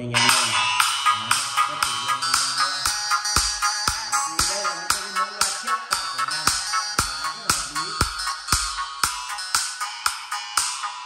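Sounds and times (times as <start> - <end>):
thin trebly dance music: 0.0 - 11.0.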